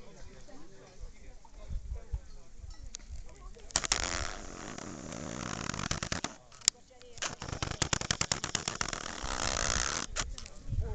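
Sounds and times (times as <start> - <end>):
camera handling clicks and rustles: 5.6 - 10.6.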